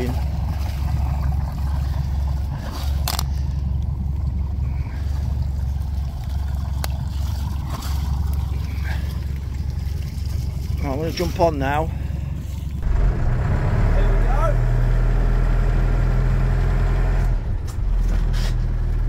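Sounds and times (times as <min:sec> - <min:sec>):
boat engine rumbling: 0:00.0 - 0:19.0.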